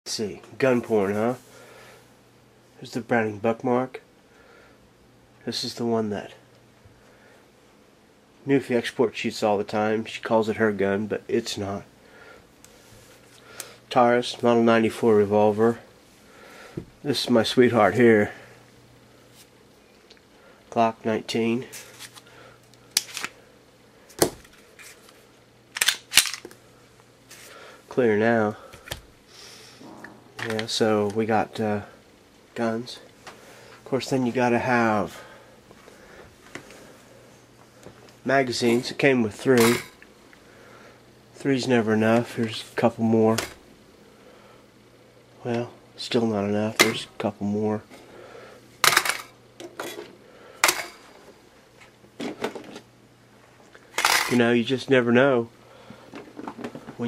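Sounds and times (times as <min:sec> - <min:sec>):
metal magazines clattering: 0:25.8 - 0:26.5.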